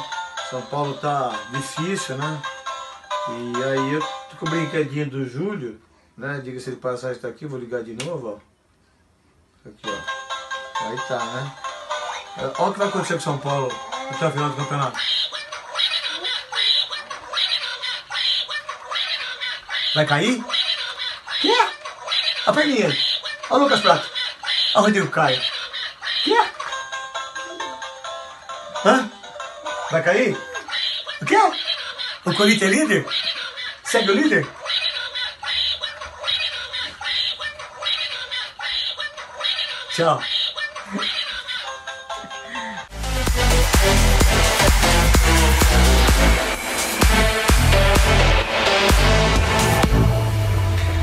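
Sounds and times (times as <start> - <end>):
toy duck squawking: 13.6 - 27.9, 29.3 - 42.0.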